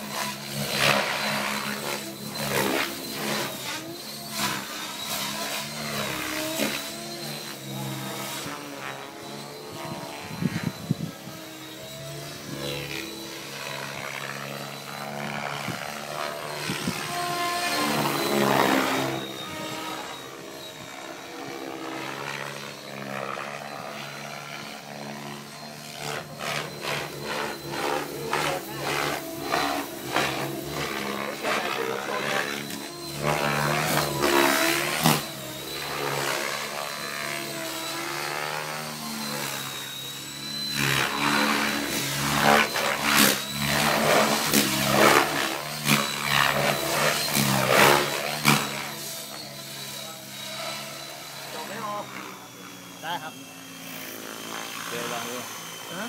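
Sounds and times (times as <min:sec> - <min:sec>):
rotor blades chopping: 0:00.0 - 0:50.7
rc helicopter motor whine: 0:00.0 - 0:56.0.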